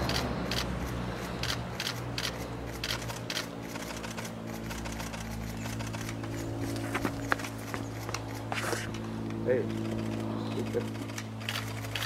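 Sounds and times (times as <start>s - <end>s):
camera shutters clicking: 0.0s - 7.5s, 9.7s - 12.0s
steady low hum: 0.0s - 12.0s.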